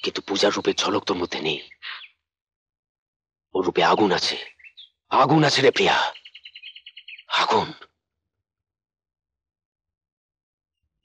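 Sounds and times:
man speaking: 0.0 - 2.0, 3.6 - 4.5, 5.1 - 6.2, 7.3 - 7.8.

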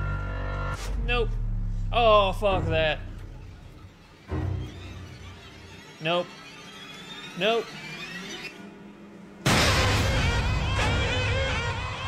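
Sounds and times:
tense low background music: 0.0 - 7.4, 9.1 - 12.0
loud jump-scare music sting: 9.4 - 12.0.

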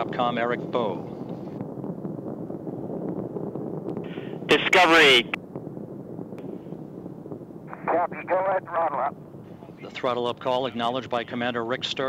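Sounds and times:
distant rocket engine roar: 0.0 - 12.0.

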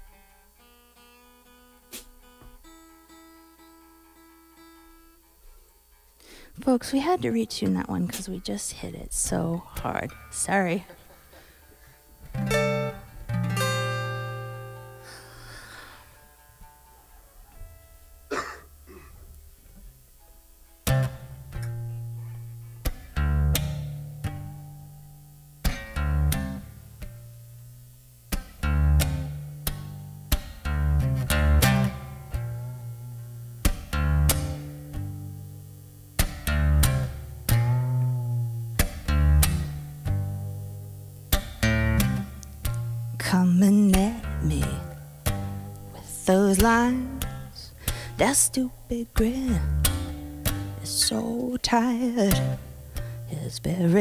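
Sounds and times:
acoustic guitar chord ringing: 0.0 - 6.0, 6.6 - 19.2, 19.9 - 54.0
quiet guitar single notes: 0.0 - 54.0
rhythmic acoustic guitar strumming: 0.0 - 54.0
electric guitar: 9.2 - 54.0
bass line: 12.2 - 15.4, 20.8 - 54.0.

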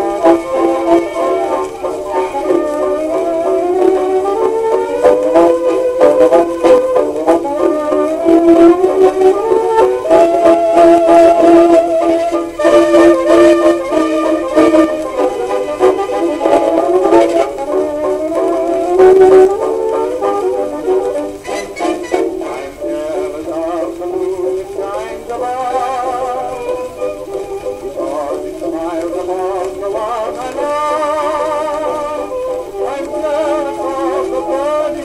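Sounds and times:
old record of dance band: 0.0 - 35.0.

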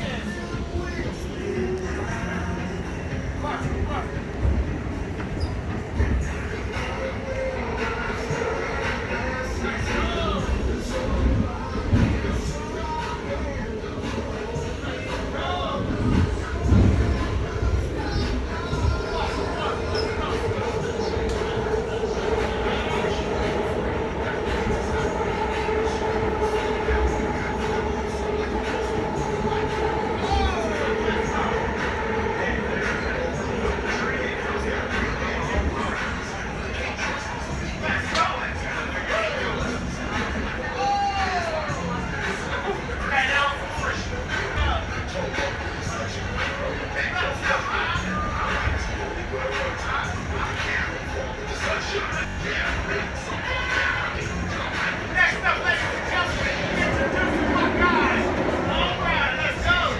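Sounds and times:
constant hum: 0.0 - 59.9
train car rumbling: 0.0 - 59.9
voices: 0.0 - 59.9.

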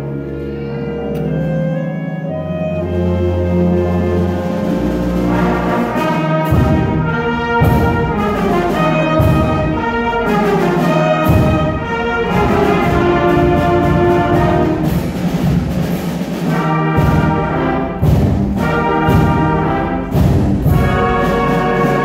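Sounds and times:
concert band playing: 0.0 - 22.0.

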